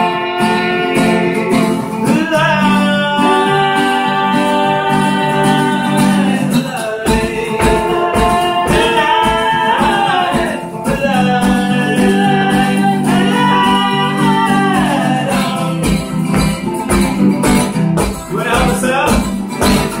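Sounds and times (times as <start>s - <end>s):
woman singing: 0.0s - 15.9s
acoustic guitar strumming: 0.0s - 20.0s.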